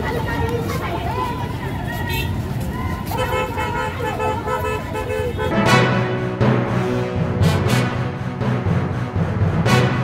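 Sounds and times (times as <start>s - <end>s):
voices: 0.0s - 5.5s
road traffic: 0.0s - 10.0s.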